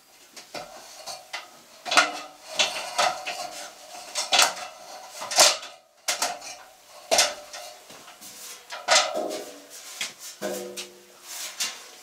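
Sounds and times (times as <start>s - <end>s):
sheet metal clanking on ladder: 0.5s - 9.7s, 10.4s - 11.1s.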